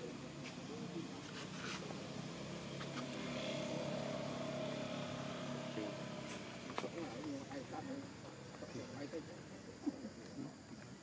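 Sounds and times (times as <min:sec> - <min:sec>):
engine hum: 0:00.0 - 0:09.7.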